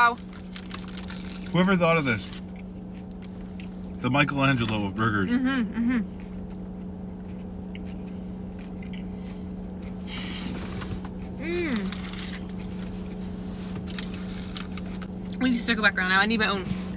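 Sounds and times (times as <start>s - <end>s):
car cabin hum: 0.0s - 16.9s.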